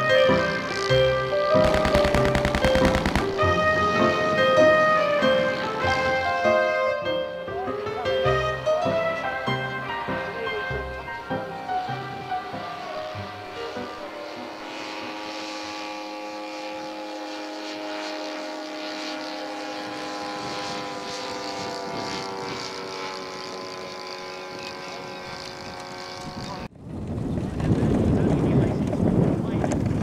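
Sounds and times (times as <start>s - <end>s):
model plane engine droning: 0.0s - 26.7s.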